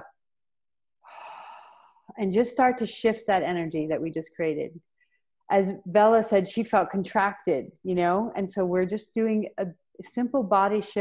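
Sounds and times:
woman breathing in: 1.0 - 2.1.

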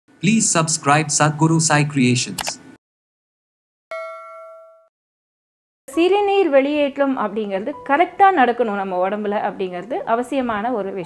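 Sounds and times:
bell ding: 3.9 - 4.9.

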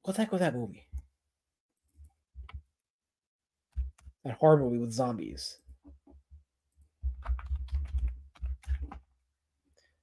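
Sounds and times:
typing on computer keyboard: 7.1 - 9.0.

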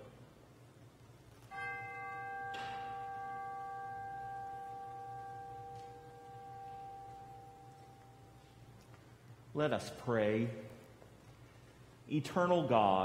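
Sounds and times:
bell ringing: 1.4 - 9.0.

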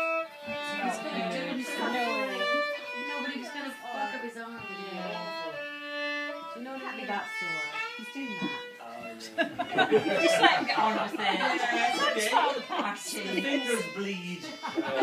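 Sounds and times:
fiddle playing a tune: 0.0 - 15.0.

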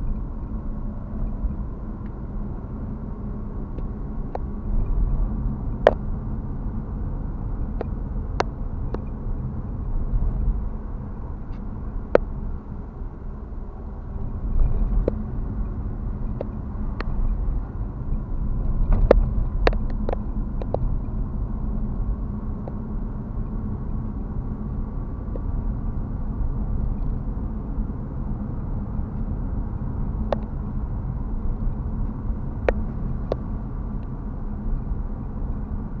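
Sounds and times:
car engine and road rumble: 0.0 - 36.0
sharp clicks and knocks: 18.6 - 20.9.

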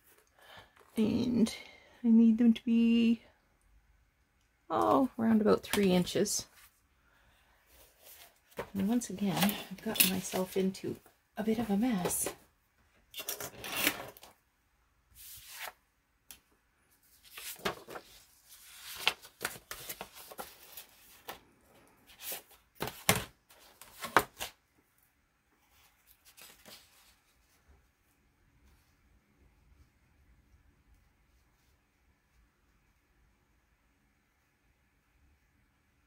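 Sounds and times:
paper rustling and shuffling: 7.7 - 10.8, 15.1 - 15.8, 16.9 - 24.6, 25.6 - 28.9.

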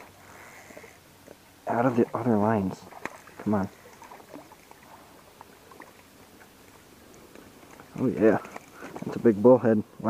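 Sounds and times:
light water splashing: 0.0 - 9.4
small clicks and rustles: 3.0 - 9.3.

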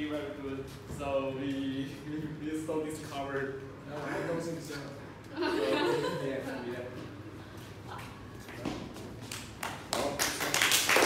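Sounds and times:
audience applause: 9.9 - 11.0.

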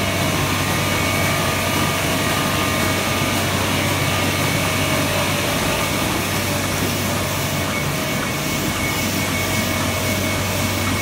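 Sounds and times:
printing press running: 0.0 - 11.0.

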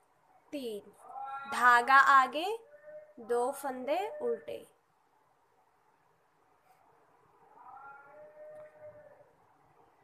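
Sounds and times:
faint animal call: 2.6 - 3.3, 7.3 - 9.5.

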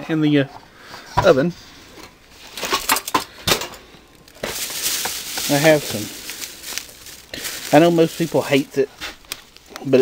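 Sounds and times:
bag rustling: 4.1 - 9.7
packages knocking on shelf: 4.4 - 6.2.

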